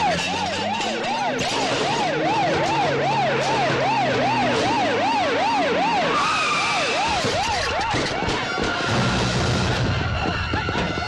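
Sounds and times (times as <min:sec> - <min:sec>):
higher siren tone: 0:00.0 - 0:08.1
police siren yelping: 0:00.0 - 0:11.0.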